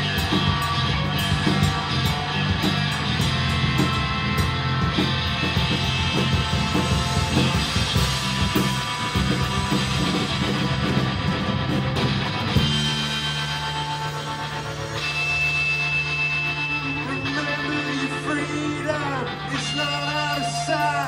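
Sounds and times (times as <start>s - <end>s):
guitar chord ringing: 0.0s - 21.0s
rock band playing: 0.0s - 21.0s.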